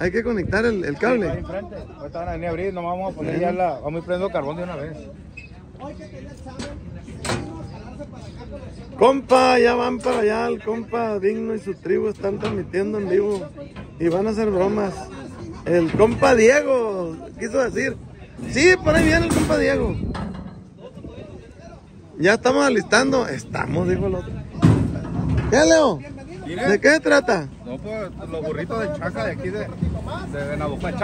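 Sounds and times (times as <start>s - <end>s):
faint background voices: 0.0s - 31.0s
low outdoor noise: 0.0s - 31.0s.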